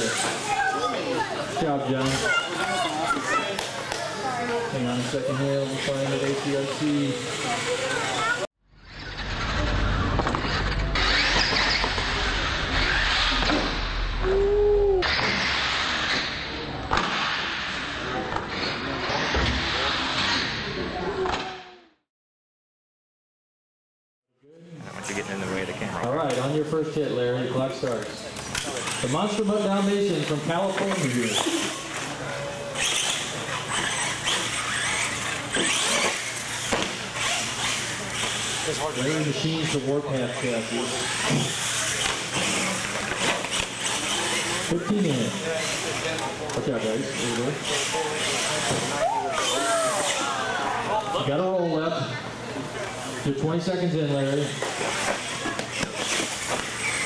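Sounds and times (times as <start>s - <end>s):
toy truck electric motor whining: 5.6s - 13.7s, 28.5s - 50.4s, 54.4s - 57.0s.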